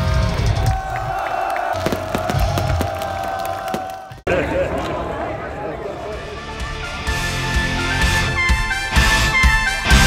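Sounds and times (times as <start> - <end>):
crowd cheering: 0.0 - 7.9.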